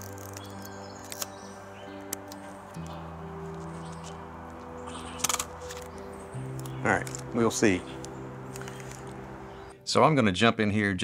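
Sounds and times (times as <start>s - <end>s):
slow background music chords: 0.0s - 11.0s.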